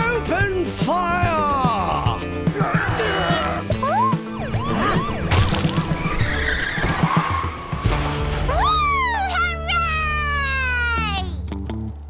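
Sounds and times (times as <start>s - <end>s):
car skidding and crashing: 4.6s - 8.7s
glass breaking: 5.3s - 5.9s.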